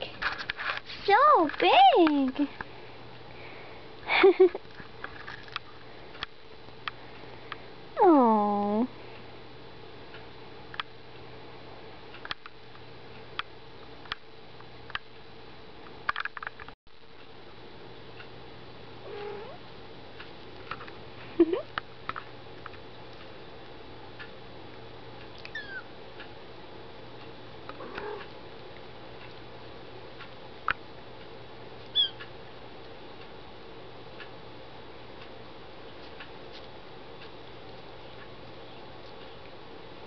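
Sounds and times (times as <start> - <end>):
faint steady hum: 0.0 - 40.0
cat mewing: 19.0 - 19.6, 25.4 - 25.9, 27.8 - 28.3
kitten squeaking: 25.4 - 25.9, 31.9 - 32.3.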